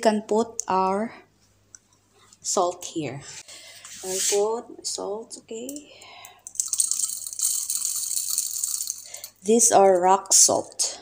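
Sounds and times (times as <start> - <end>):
salt crystals trickling into grinder: 6.5 - 9.5.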